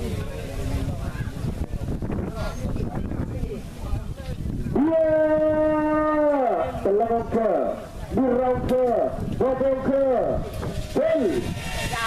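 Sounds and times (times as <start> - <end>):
man calling in long notes: 4.8 - 7.3.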